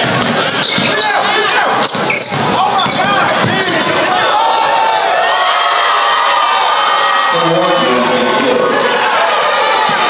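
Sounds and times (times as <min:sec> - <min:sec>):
basketball bouncing on court: 0:00.0 - 0:04.1
shoe squeaks: 0:00.0 - 0:04.3
voices of players and spectators: 0:00.0 - 0:10.0.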